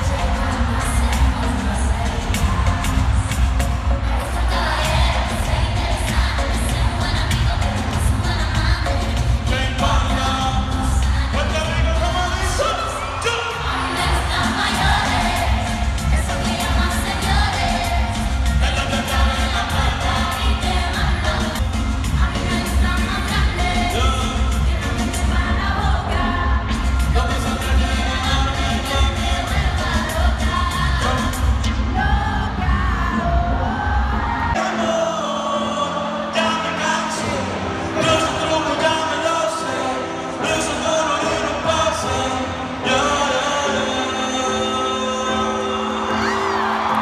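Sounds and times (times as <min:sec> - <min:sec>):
singer over heavy bass beat: 0:00.0 - 0:35.8.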